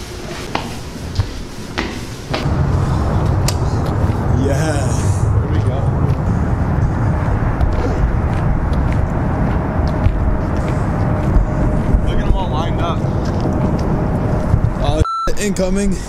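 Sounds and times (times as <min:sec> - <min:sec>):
loud low rumbling: 0:02.4 - 0:15.0.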